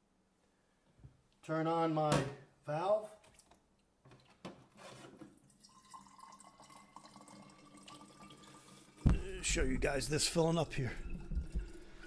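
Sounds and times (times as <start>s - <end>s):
water running into glass bottle: 5.5s - 9.3s, 10.4s - 12.0s.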